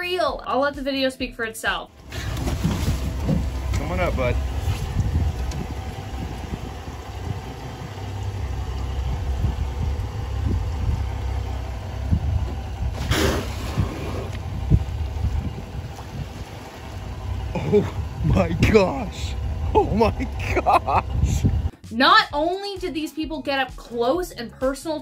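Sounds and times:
water moving around boat: 0:01.9 - 0:21.7
wind rumble on microphone: 0:02.0 - 0:21.7.

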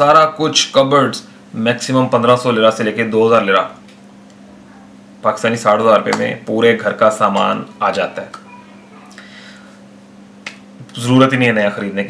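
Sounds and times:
speech: 0:00.0 - 0:03.8, 0:04.7 - 0:09.2, 0:10.8 - 0:12.0
steady low hum: 0:00.0 - 0:12.0.

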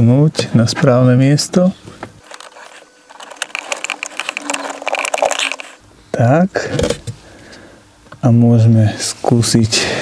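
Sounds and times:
wires and terminal clicking: 0:02.2 - 0:05.8.

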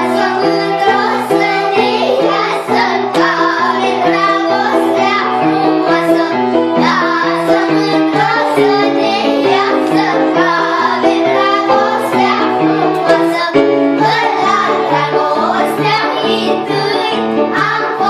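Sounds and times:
children singing: 0:00.0 - 0:18.0
instrumental accompaniment: 0:00.0 - 0:18.0.

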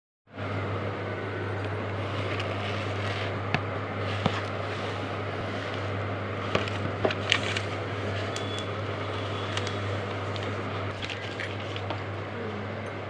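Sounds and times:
steady low hum: 0:00.3 - 0:13.0.

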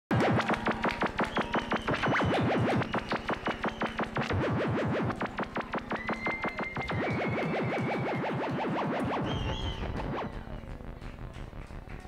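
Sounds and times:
zigzagging synthesizer tone: 0:00.1 - 0:11.4
fast clicking electronic beat: 0:00.1 - 0:12.0
low synth drone: 0:00.1 - 0:12.0.

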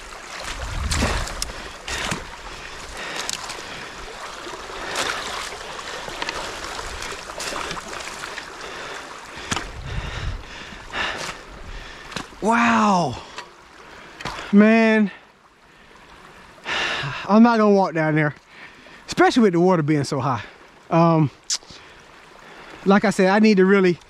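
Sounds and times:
low rumbles: 0:00.0 - 0:04.0, 0:09.3 - 0:12.5
water rushing: 0:00.0 - 0:24.0
sticks knocking and crackling: 0:03.1 - 0:03.6, 0:09.4 - 0:09.8.

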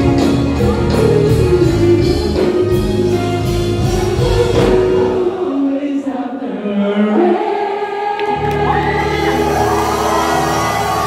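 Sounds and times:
live band with singing: 0:00.0 - 0:11.0.

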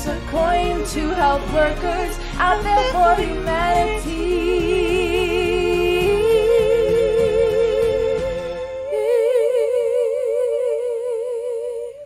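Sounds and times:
backing music track: 0:00.0 - 0:11.4
woman singing with vibrato: 0:00.0 - 0:12.0.

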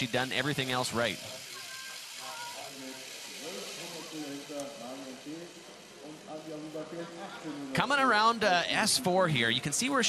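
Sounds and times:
steady hiss: 0:00.0 - 0:08.2
faint voices: 0:00.6 - 0:10.0.

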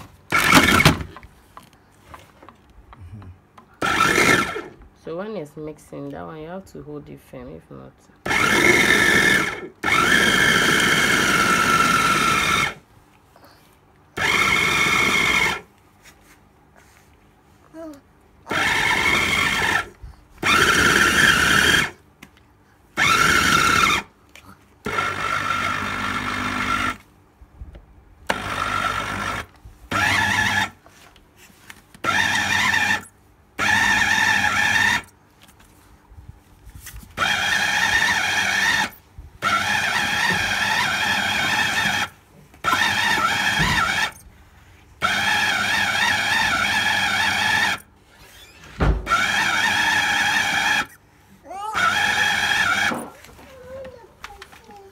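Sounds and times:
blender motor whining: 0:00.3 - 0:01.2, 0:03.8 - 0:04.8, 0:08.2 - 0:12.8, 0:14.2 - 0:15.7, 0:18.5 - 0:22.0, 0:23.0 - 0:24.1, 0:24.8 - 0:27.0, 0:28.3 - 0:30.8, 0:32.0 - 0:35.1, 0:37.2 - 0:44.2, 0:45.0 - 0:53.2.

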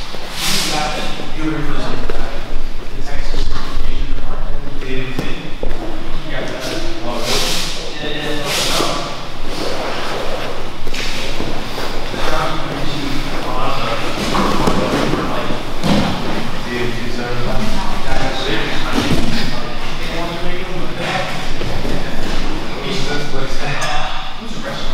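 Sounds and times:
voices talking in echoing hall: 0:00.0 - 0:24.9.

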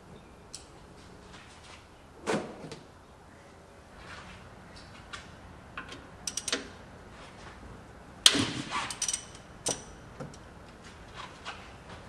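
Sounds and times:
ratchet wrench clicking: 0:06.3 - 0:06.6, 0:08.9 - 0:09.9.

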